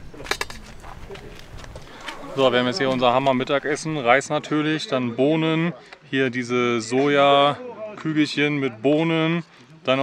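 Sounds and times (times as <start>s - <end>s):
outdoor background sound: 0.0s - 10.0s.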